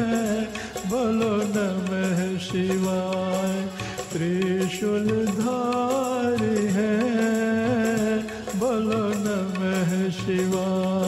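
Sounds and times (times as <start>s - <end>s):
steady percussion: 0.0s - 11.0s.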